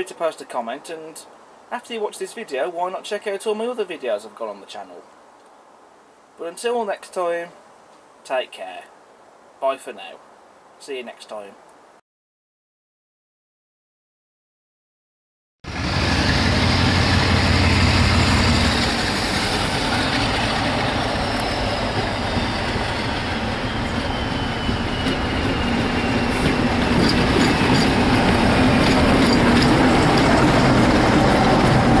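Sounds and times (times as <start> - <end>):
diesel locomotive passing: 15.6 - 32.0.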